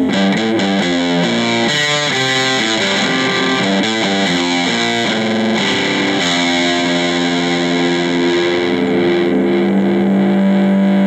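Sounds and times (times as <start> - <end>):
acoustic guitar strumming chords: 0.0 - 11.0.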